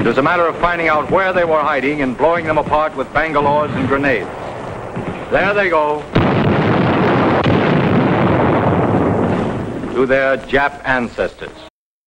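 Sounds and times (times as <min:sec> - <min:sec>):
large explosion rumbling: 0:00.0 - 0:11.0.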